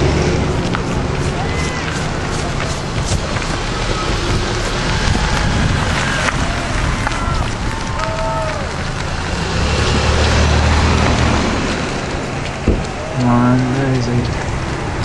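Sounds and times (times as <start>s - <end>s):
cars driving past: 0.0s - 15.0s
low rumble: 0.0s - 15.0s.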